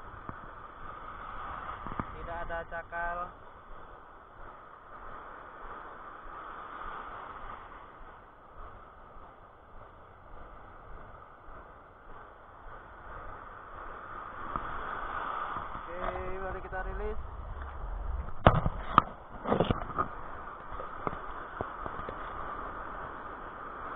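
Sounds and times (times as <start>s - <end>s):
surf and white water rushing: 0.0s - 23.9s.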